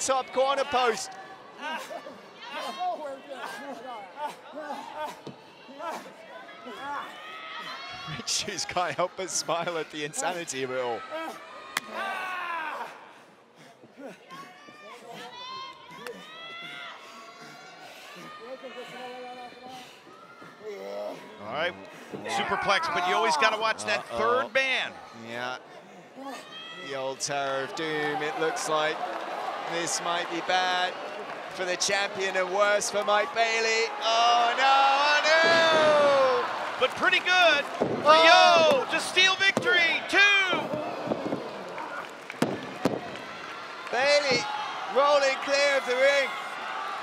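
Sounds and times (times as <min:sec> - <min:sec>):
crowd shouting and calling out: 0:00.0 - 0:13.5, 0:14.4 - 0:47.0.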